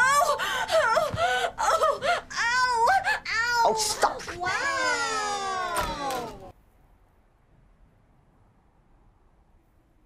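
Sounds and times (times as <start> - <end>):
woman wailing and whimpering: 0.0 - 6.5.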